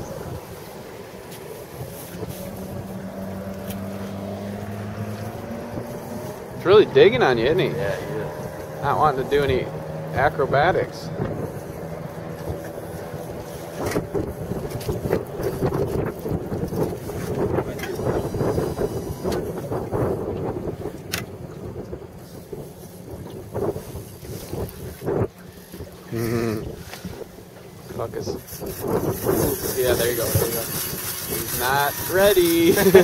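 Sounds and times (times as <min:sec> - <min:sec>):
choppy water: 0:00.0 - 0:33.0
wind buffeting microphone: 0:00.0 - 0:33.0
short voice: 0:26.1 - 0:26.7.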